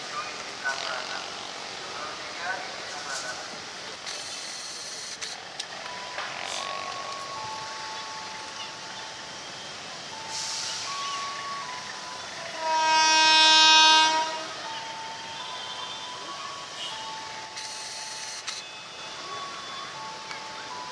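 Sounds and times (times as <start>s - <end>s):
locomotive air horn blast: 12.6s - 14.6s.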